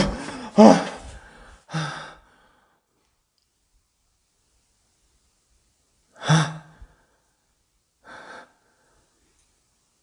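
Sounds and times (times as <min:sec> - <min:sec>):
person gasping loudly: 0:00.0 - 0:02.8, 0:06.2 - 0:07.1.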